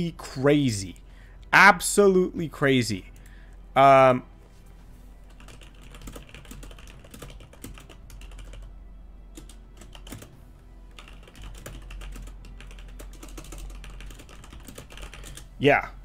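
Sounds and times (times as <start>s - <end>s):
steady low hum: 0.0s - 16.0s
typing on computer keyboard: 5.4s - 8.7s, 9.4s - 10.3s, 11.0s - 15.5s.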